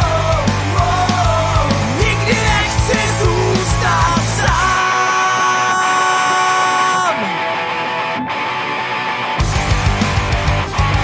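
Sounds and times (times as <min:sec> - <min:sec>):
punk electric guitar: 0:00.0 - 0:11.0.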